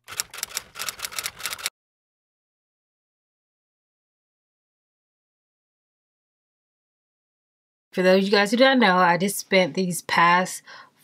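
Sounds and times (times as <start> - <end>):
typewriter key clacks: 0.0 - 1.7.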